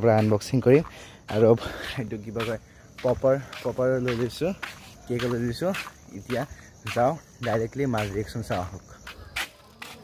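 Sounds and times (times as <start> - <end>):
man speaking: 0.0 - 9.0.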